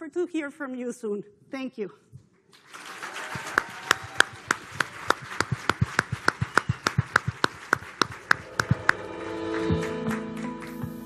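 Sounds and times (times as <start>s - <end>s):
audience applauding: 2.5s - 11.0s
loud evenly spaced claps: 2.5s - 11.0s.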